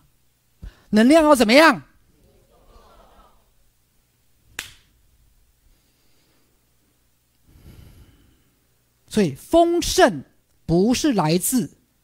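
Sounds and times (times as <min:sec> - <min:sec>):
sharp snap: 0:04.5 - 0:04.9.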